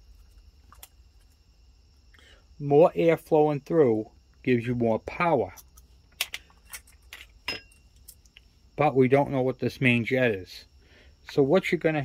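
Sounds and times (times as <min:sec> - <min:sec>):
small metal parts clinking: 0:05.5 - 0:08.3.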